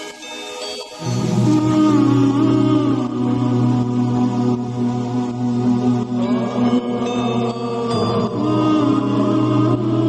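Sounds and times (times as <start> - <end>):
steady drone: 0.0 - 10.0
chanting voice: 1.0 - 10.0.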